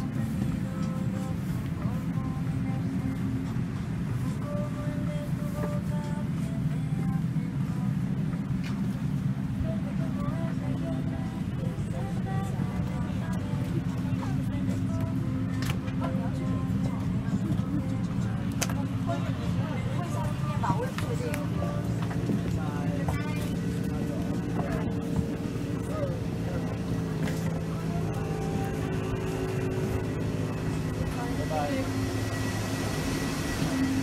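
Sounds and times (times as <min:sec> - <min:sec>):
aircraft cabin hum: 0:00.0 - 0:34.0
passengers talking: 0:00.0 - 0:34.0.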